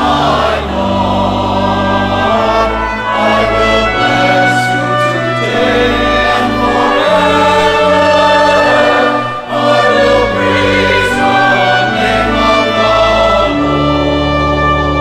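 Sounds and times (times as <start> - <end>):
choir singing a hymn: 0.0 - 15.0
instrumental accompaniment: 0.0 - 15.0.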